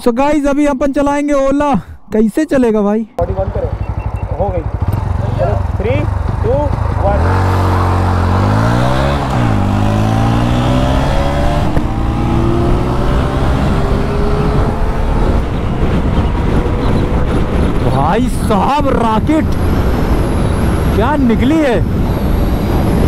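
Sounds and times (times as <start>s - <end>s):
motorcycle engine accelerating: 3.2s - 18.3s, 21.8s - 23.0s
wind rush: 6.8s - 23.0s.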